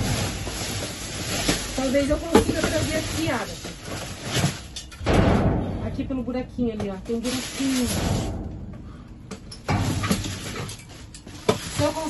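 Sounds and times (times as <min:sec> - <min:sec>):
plastic and cardboard rustling: 0:00.0 - 0:04.8, 0:06.8 - 0:08.3, 0:09.6 - 0:12.0.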